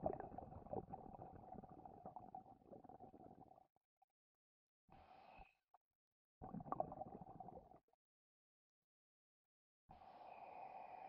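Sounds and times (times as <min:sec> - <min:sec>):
underwater bubbling and gurgling: 0:00.0 - 0:03.6, 0:06.4 - 0:07.8.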